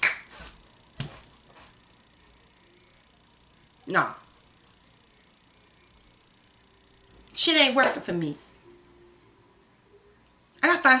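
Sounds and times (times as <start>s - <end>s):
hand snaps: 0.0s - 0.3s.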